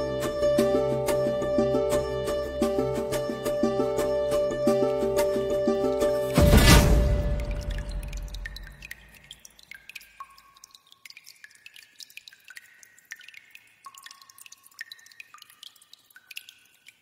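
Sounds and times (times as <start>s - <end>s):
drip-like plinks: 5.9s - 17.0s.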